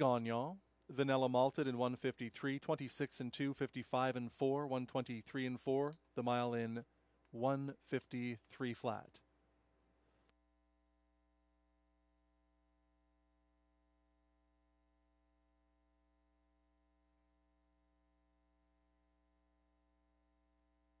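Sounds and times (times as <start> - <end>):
faint steady hum: 0.0 - 21.0.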